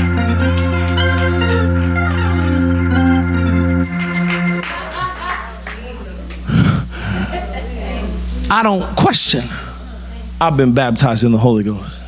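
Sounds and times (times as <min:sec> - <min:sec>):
low organ drone: 0:00.0 - 0:12.0.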